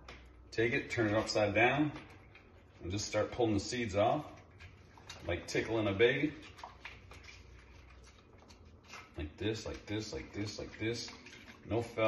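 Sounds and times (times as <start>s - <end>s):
small ticks and patters under water: 1.2s - 12.0s.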